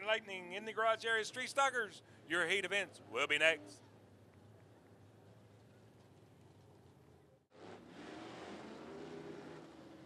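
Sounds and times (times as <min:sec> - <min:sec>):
race car engines accelerating: 0:07.5 - 0:10.0.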